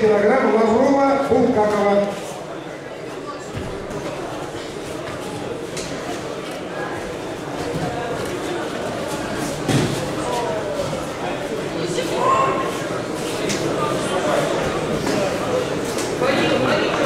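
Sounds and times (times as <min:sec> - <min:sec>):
spectators chattering in a hall: 0:00.0 - 0:17.0.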